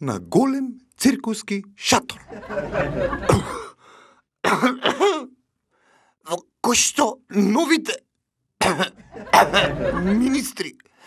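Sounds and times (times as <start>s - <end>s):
man clearing his throat: 3.3s - 3.8s, 4.4s - 5.4s, 8.6s - 9.0s.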